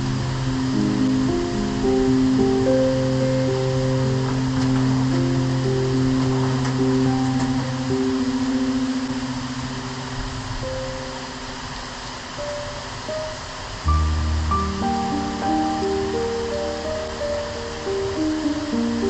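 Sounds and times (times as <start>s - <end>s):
rain falling in forest: 0.0s - 19.0s
soft slow music: 0.0s - 19.0s.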